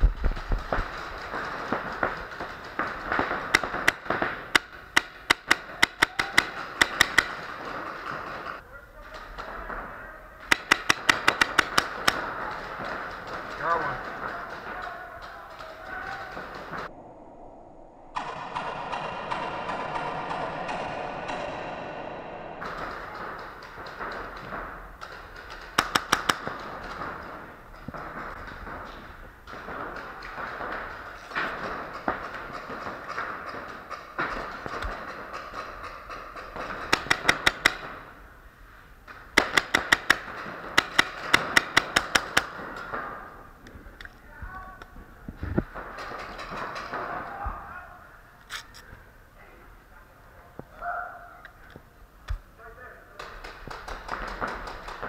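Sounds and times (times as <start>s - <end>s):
indoor arena noise: 0.0s - 17.0s, 18.1s - 55.0s
paintball markers firing pops: 0.2s - 8.6s, 10.5s - 16.9s, 22.6s - 38.2s, 39.1s - 44.2s, 53.2s - 55.0s.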